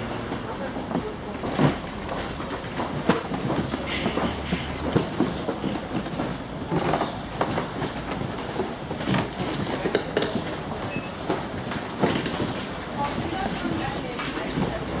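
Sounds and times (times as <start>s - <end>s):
steady background noise: 0.0s - 15.0s.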